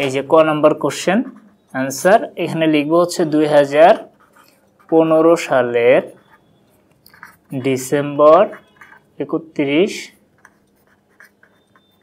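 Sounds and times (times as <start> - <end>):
pen scratching on paper: 3.6 - 9.2, 10.1 - 12.0.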